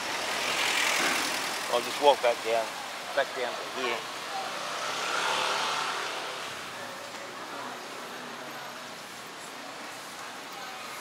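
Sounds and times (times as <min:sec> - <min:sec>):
traffic hum: 0:00.0 - 0:11.0
motor vehicle passing: 0:04.4 - 0:06.7.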